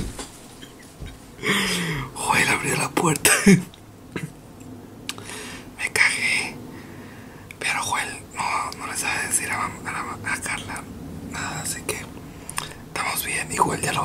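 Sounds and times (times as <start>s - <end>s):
man whispering: 1.8s - 3.4s, 5.8s - 6.6s, 7.6s - 14.0s.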